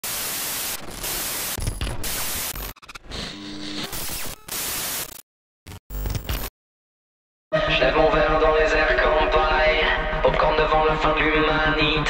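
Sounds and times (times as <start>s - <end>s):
static hiss glitch: 0.0s - 6.5s.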